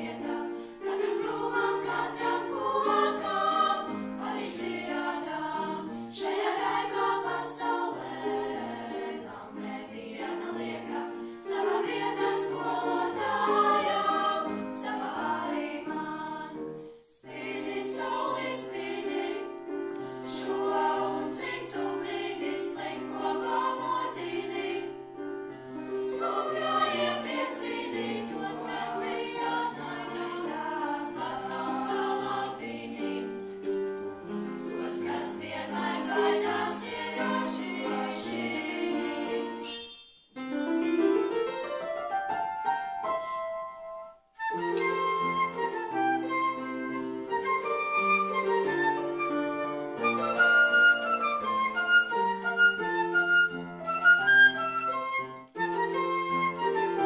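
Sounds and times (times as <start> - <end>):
girls' choir singing: 0.0 - 19.6, 20.3 - 25.0, 26.0 - 39.6.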